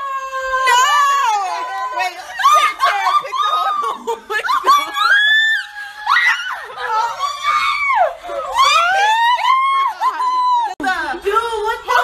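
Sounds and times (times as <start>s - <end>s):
women shrieking and laughing: 0.0s - 10.8s.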